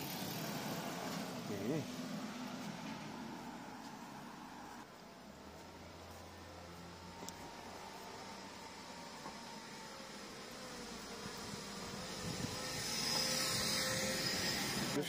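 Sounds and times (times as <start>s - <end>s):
vehicle passing on street: 0.0s - 15.0s.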